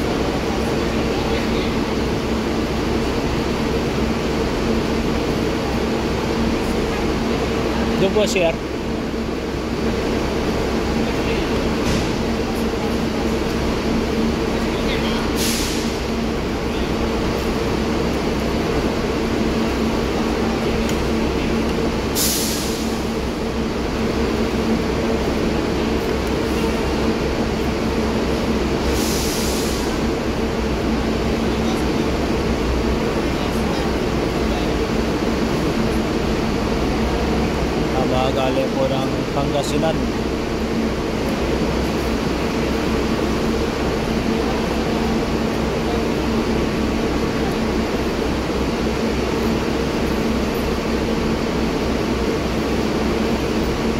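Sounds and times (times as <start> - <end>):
bus engine idling: 0.0 - 53.9
compressed air hisses: 15.4 - 16.0, 22.2 - 23.0, 28.9 - 30.0.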